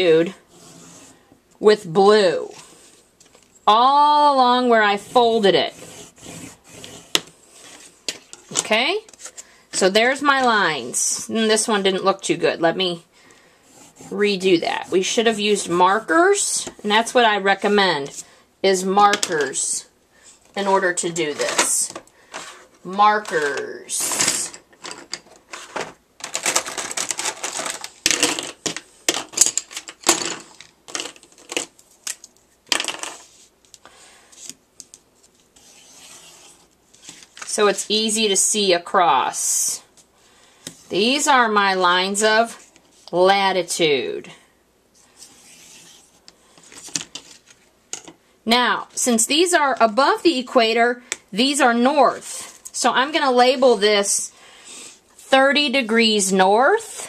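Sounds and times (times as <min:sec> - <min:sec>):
pencil scratching on paper plate: 0:04.7 - 0:08.0, 0:13.6 - 0:15.1, 0:35.6 - 0:36.7.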